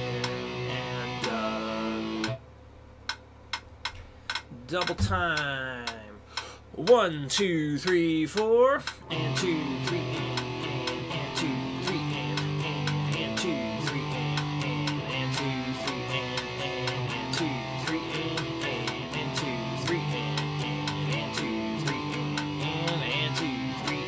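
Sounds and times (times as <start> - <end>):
electric guitar power chords: 0.0 - 2.4, 9.0 - 24.0
metronome clicks: 0.0 - 2.4, 3.0 - 24.0.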